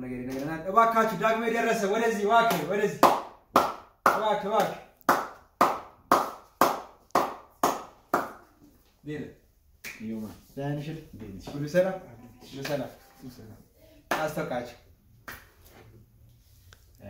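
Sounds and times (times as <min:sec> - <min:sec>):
rhythmic hand clapping: 0:02.4 - 0:08.5, 0:14.1 - 0:14.5.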